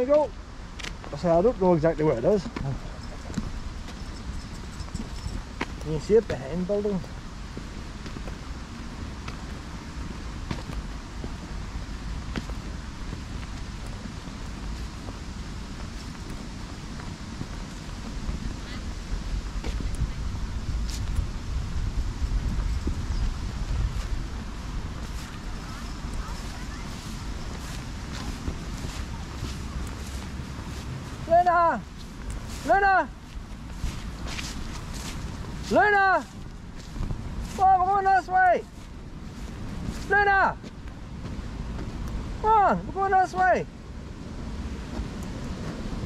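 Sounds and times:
footsteps on tarmac: 0.0 - 46.0
wind rumbling on microphone: 0.0 - 46.0.

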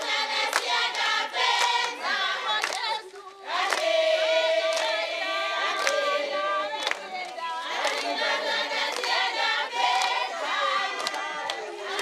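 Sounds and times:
sharp clap: 0.0 - 5.0, 5.7 - 6.1, 6.7 - 8.2, 8.8 - 9.2, 9.8 - 10.3, 10.9 - 12.0
women singing in chorus: 0.0 - 12.0.

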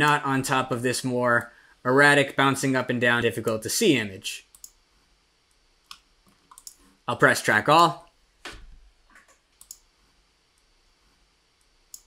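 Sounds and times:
computer mouse clicks: 4.5 - 4.8, 5.8 - 6.9, 9.1 - 9.9, 11.6 - 12.0.

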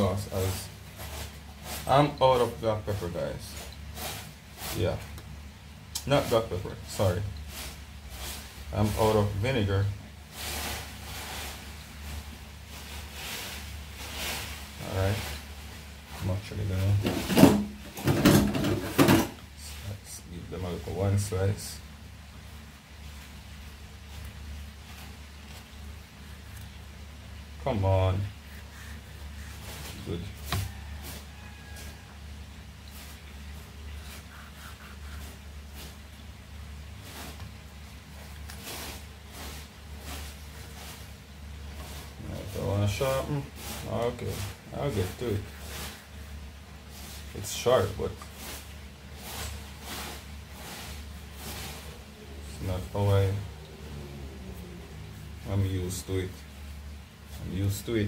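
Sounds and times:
steady low hum: 0.0 - 58.0
fingers rustling dry seasoning: 27.7 - 32.2, 32.8 - 36.2, 37.0 - 53.6
knife scraping fish skin: 34.0 - 36.0.

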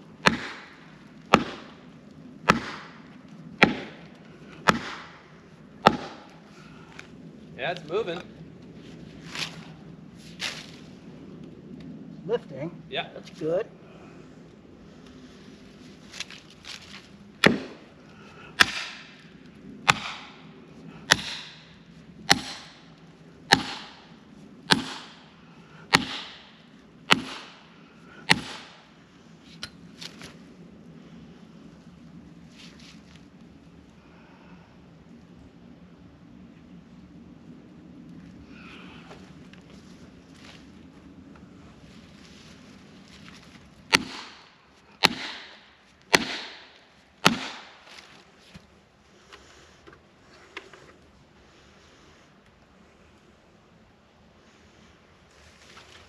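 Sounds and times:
axe striking wedge: 0.2 - 0.7, 2.5 - 3.0, 3.6 - 4.0, 4.7 - 5.1, 5.8 - 6.2, 17.4 - 17.8, 18.6 - 19.1, 19.9 - 20.4, 21.1 - 21.6, 22.3 - 22.8, 23.5 - 24.0, 24.7 - 25.2, 25.9 - 26.5, 27.1 - 27.6, 28.3 - 28.8, 43.9 - 44.4, 45.0 - 47.7.

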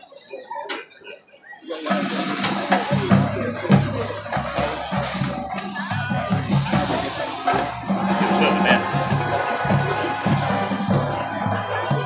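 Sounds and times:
marching band playing: 1.9 - 12.0.

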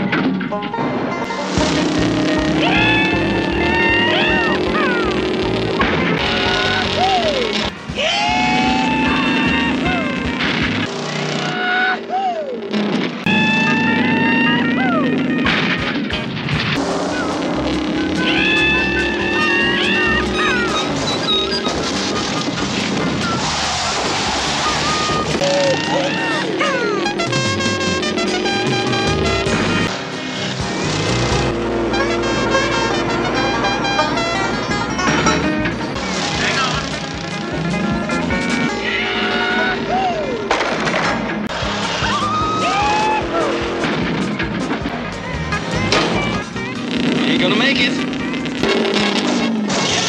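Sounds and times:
car engine: 0.0 - 50.0
tyres skidding: 0.0 - 50.0
chase music: 0.8 - 10.9, 12.6 - 50.0.

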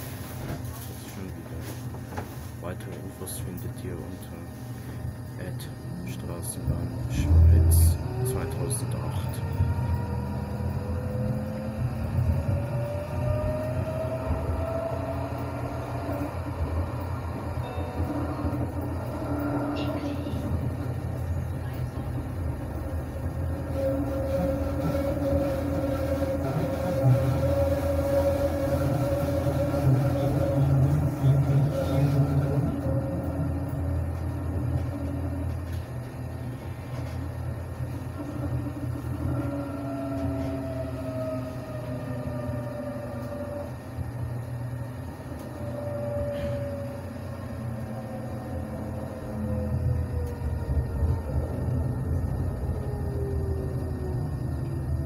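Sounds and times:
tram wheels rumbling on track: 0.0 - 55.0
whining motor tone: 6.6 - 36.4, 37.0 - 55.0.

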